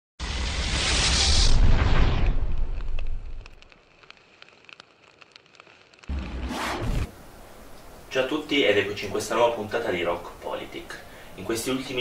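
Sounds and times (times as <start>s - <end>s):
fire crackling and popping: 0.3s - 8.2s
low hiss: 7.1s - 12.0s.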